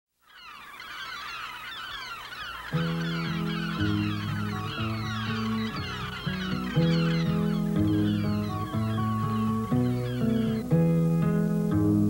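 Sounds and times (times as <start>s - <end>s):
gulls calling: 0.2s - 12.0s.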